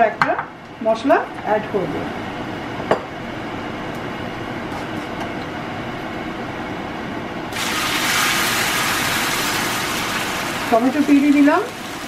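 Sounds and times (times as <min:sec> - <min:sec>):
puree hissing in hot oil: 0:07.5 - 0:12.0
seeds sizzling in hot oil: 0:07.5 - 0:12.0.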